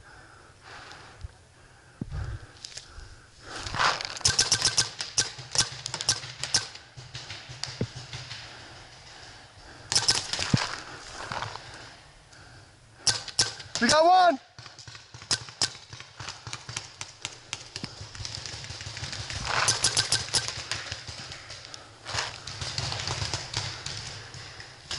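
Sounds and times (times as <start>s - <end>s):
paintball markers firing: 3.7s - 8.7s, 9.9s - 11.0s, 13.0s - 24.9s.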